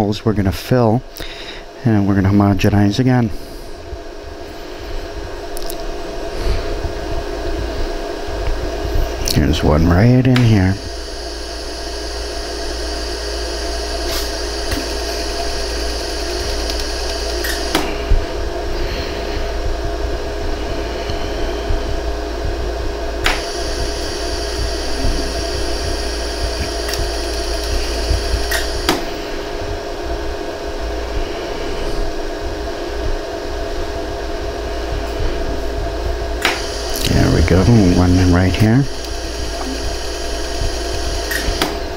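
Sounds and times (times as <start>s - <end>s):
laser welder humming: 3.4s - 32.2s, 33.4s - 41.9s
sharp laser pulse clicks: 14.1s - 17.9s, 23.2s - 29.0s, 39.0s - 41.8s.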